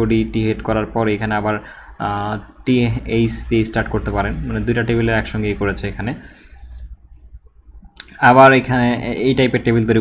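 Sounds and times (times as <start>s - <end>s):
man speaking: 0.0s - 6.4s, 7.9s - 10.0s
computer mouse clicks: 6.4s - 8.2s.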